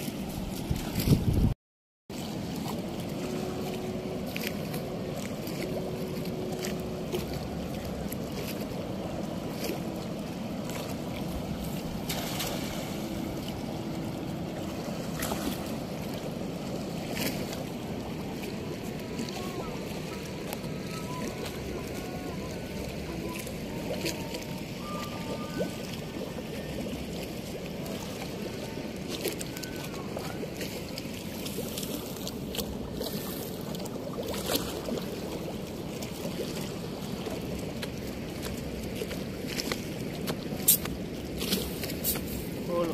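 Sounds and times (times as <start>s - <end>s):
river water rushing: 2.2s - 42.9s.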